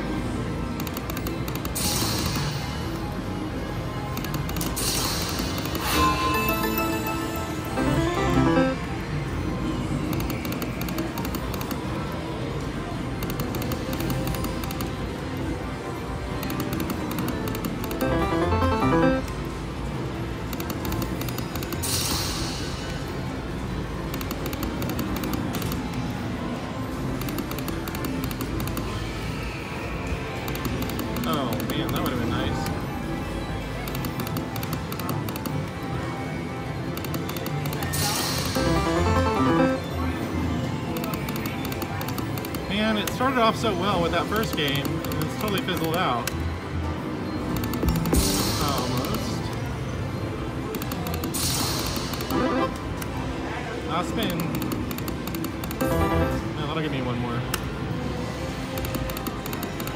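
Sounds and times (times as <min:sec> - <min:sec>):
casino noise and voices: 0:00.0 - 0:59.9
slot machine game music: 0:03.5 - 0:09.7, 0:13.3 - 0:21.6, 0:30.5 - 0:46.2, 0:51.3 - 0:53.3, 0:55.1 - 0:57.5.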